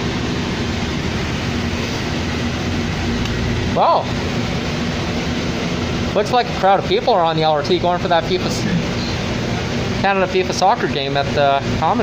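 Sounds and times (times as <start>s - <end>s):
bus engine hum: 0.0s - 12.0s.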